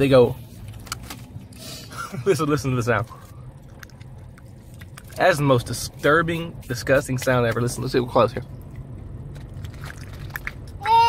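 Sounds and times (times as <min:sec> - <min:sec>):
low hum inside a car: 0:00.0 - 0:11.0.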